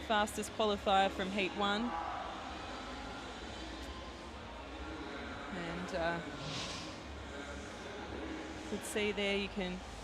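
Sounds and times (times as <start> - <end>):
indoor swimming arena hum: 0.0 - 10.0.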